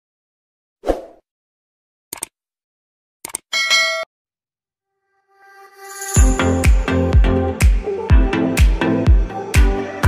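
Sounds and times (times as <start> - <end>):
bright bell ding: 3.5 - 4.1.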